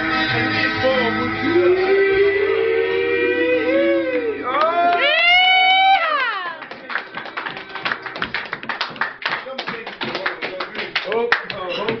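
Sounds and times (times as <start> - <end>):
people clapping: 4.6 - 12.0.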